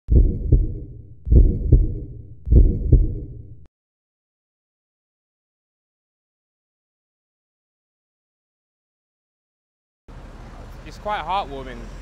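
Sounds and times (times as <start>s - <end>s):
heartbeat double thumps: 0.1s - 3.7s.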